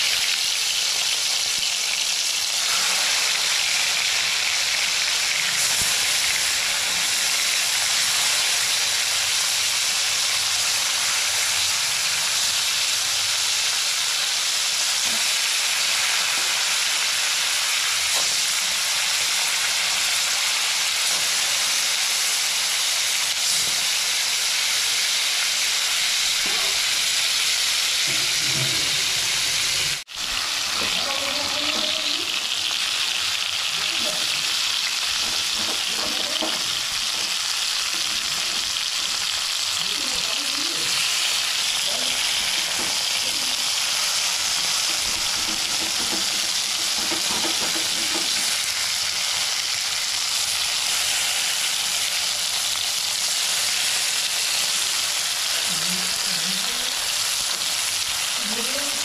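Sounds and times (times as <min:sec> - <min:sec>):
fish frying in hot oil: 0:00.0 - 0:59.0.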